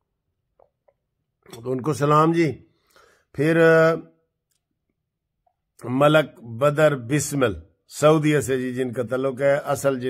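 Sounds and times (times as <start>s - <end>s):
man speaking: 1.5s - 2.7s, 3.3s - 4.2s, 5.8s - 10.0s.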